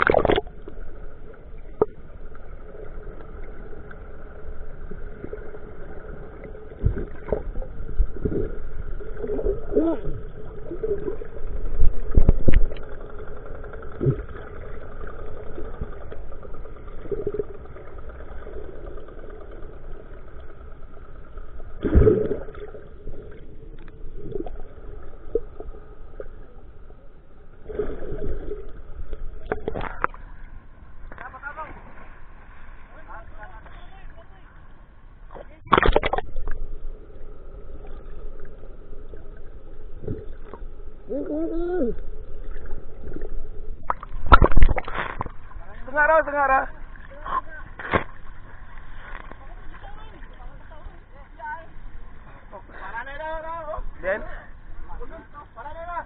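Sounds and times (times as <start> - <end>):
boat engine hum underwater: 0.0 - 56.0.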